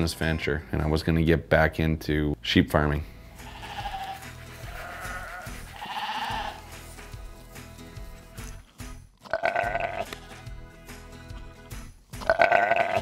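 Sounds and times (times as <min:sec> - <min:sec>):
background music: 0:00.0 - 0:13.0
sheep bleating: 0:03.4 - 0:06.7, 0:09.2 - 0:10.3, 0:12.2 - 0:13.0.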